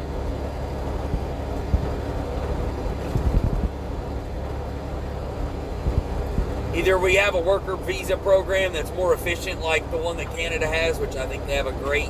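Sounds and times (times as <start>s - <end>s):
road noise: 0.0s - 12.0s
truck engine rumble: 0.0s - 12.0s
low thumps: 0.9s - 4.6s, 5.5s - 6.7s.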